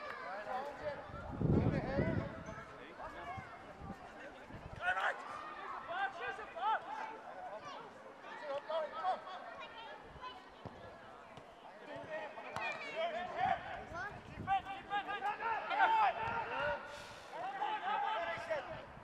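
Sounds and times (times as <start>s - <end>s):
players shouting: 11.8s - 18.9s.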